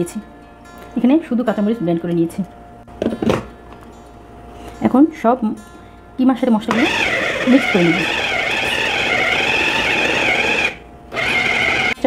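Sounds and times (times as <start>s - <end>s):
food chopper motor whirring: 6.7s - 12.0s.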